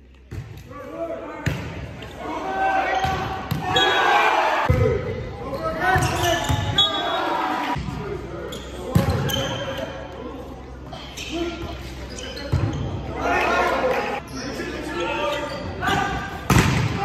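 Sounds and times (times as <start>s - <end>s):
voices in a large gym: 0.0s - 17.0s
people shouting in sports hall: 2.1s - 7.8s, 13.1s - 17.0s.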